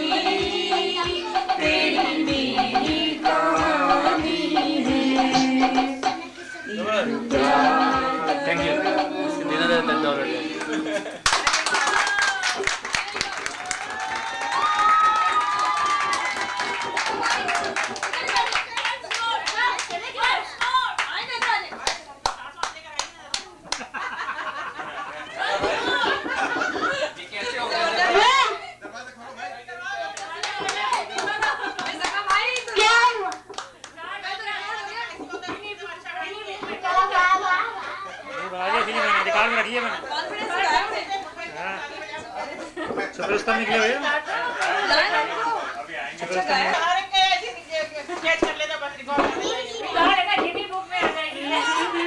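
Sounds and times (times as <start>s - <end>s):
hands clapping in rhythm: 0.0s - 6.2s, 7.3s - 23.9s, 30.2s - 34.0s
several voices chattering: 0.0s - 11.2s, 24.8s - 52.0s
voices: 0.0s - 11.2s.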